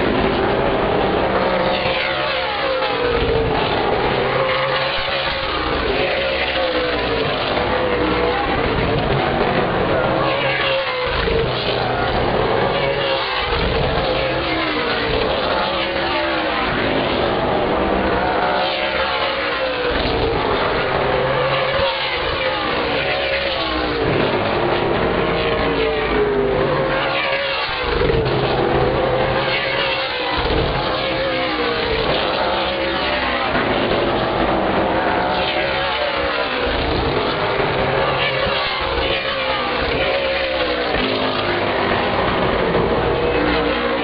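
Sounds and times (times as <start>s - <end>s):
race car engines passing: 0.0s - 44.0s.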